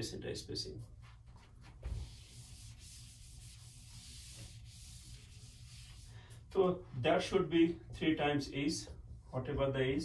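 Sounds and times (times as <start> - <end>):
eraser rubbing on whiteboard: 0.8 - 6.2.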